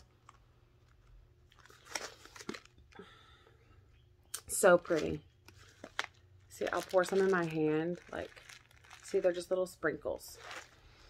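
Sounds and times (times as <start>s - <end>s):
plastic pouch crinkling: 0.0s - 3.0s, 4.6s - 11.0s.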